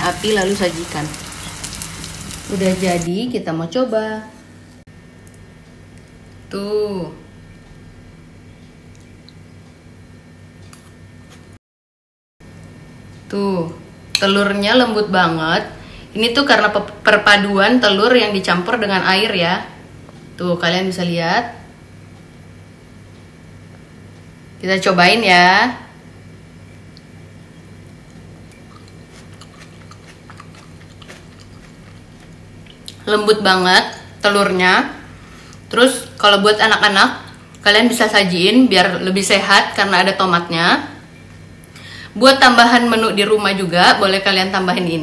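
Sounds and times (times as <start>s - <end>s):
steady low hum: 0.0s - 11.6s, 12.4s - 45.0s
person chewing soft food: 26.9s - 33.0s.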